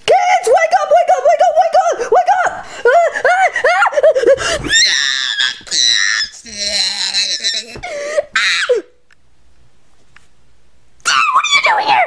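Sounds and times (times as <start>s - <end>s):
person screaming high-pitched: 4.6s - 8.9s, 11.0s - 12.0s.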